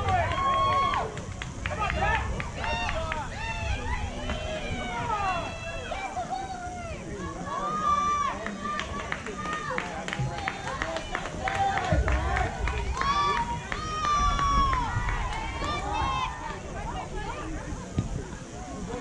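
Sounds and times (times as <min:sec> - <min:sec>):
young players shouting: 0:00.0 - 0:17.6.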